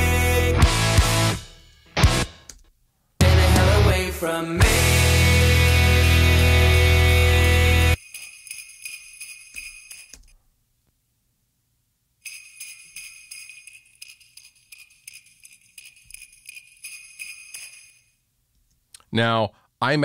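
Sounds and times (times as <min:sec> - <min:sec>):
dense rock mix: 0:00.0 - 0:02.4, 0:03.2 - 0:08.0
jingle bells shaking: 0:04.8 - 0:10.4, 0:12.2 - 0:18.2.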